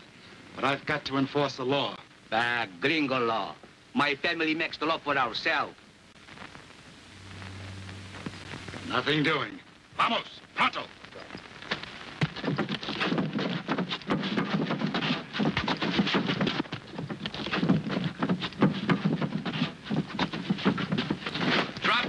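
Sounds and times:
sharp knocks and thumps: 0:12.2 - 0:22.0.

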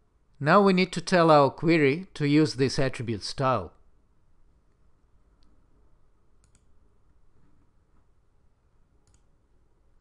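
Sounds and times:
computer mouse clicks: 0:06.4 - 0:06.8, 0:09.0 - 0:09.3.

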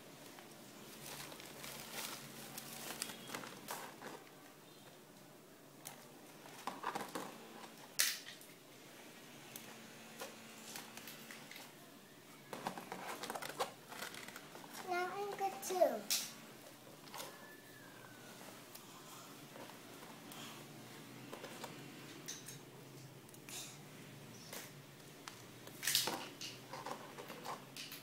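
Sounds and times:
doll clothes rustling: 0:00.2 - 0:04.3, 0:12.8 - 0:16.0.

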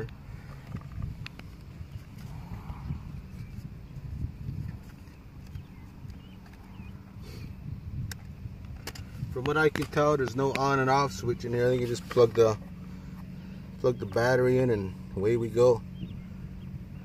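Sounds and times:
low outdoor rumble: 0:00.0 - 0:17.0.

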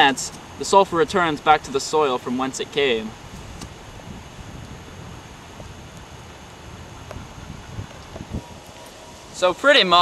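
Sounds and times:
low wind rumble on microphone: 0:02.6 - 0:10.0.

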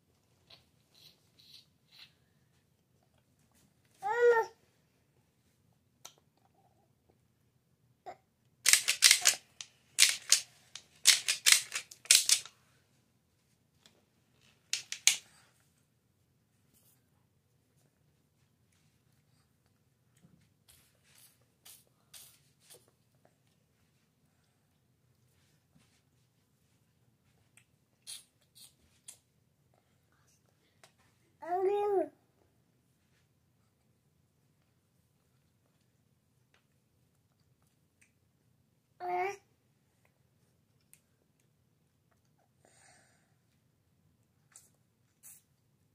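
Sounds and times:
toddler sucking candy: 0:28.0 - 0:29.2, 0:44.5 - 0:45.5.

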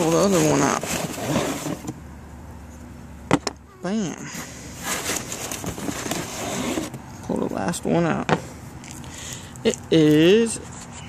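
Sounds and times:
rustling and scraping of handled parts: 0:04.4 - 0:07.0.

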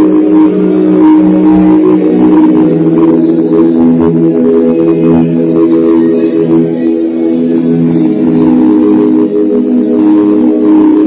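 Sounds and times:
sustained droning music tones: 0:00.0 - 0:11.0.

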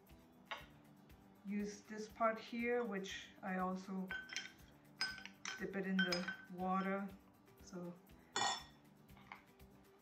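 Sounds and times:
metal spoon clinking on glass bowl: 0:04.1 - 0:07.0, 0:08.4 - 0:08.8.

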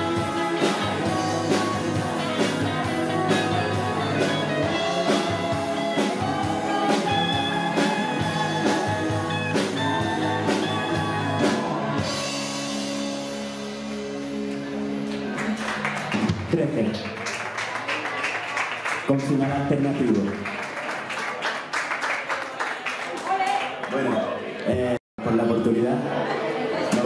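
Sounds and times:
man singing lead vocal: 0:00.0 - 0:12.3
live rock band playing: 0:00.0 - 0:16.5.

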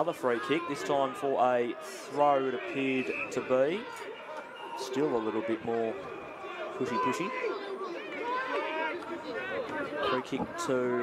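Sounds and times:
voices talking: 0:02.3 - 0:11.0.

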